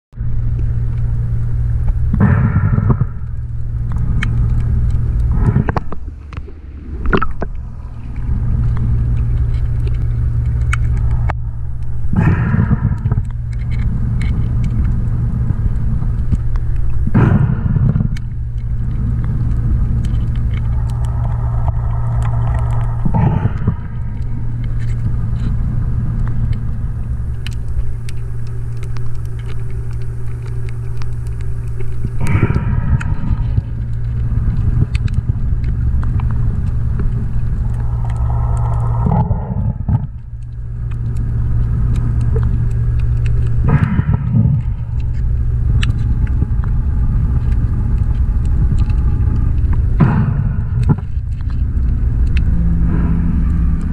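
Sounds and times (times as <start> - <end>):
low underwater rumble and hum: 0.1 - 53.9
scuba regulator bubbles: 0.4 - 53.9.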